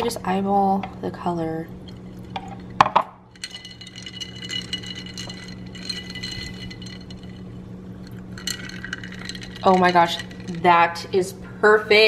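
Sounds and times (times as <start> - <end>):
ice cubes clinking against glass: 2.0 - 10.8.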